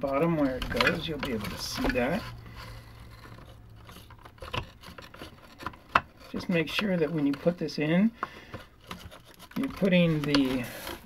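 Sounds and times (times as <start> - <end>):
wood and plastic scraping: 0.0 - 11.0.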